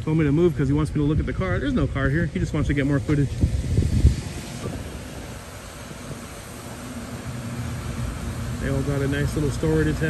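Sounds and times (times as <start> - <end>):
outdoor background rumble and hiss: 0.0 - 10.0.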